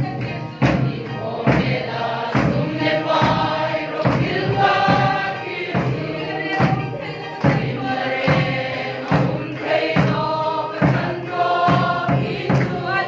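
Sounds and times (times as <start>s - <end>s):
congregation singing a hymn: 0.0s - 13.0s
hand claps on the beat: 0.0s - 13.0s.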